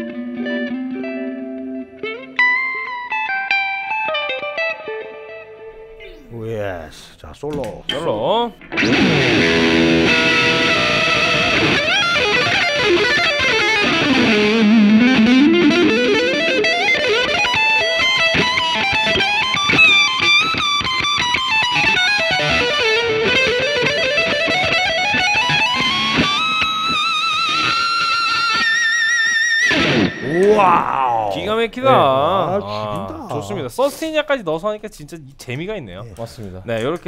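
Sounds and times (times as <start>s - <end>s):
electric guitar solo: 0.0s - 6.2s, 8.6s - 33.6s.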